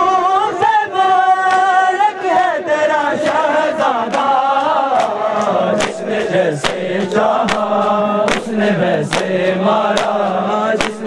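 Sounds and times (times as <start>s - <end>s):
men chanting a lament: 0.0s - 11.0s
chest-beating slaps: 4.1s - 11.0s.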